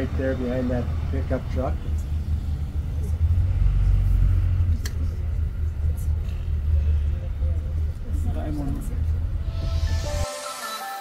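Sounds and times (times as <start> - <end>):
bus engine running low: 0.0 - 10.0.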